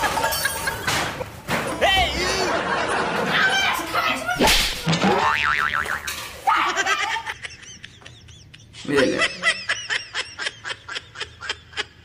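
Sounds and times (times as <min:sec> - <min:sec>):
comic wobbling boing: 0:04.9 - 0:06.1.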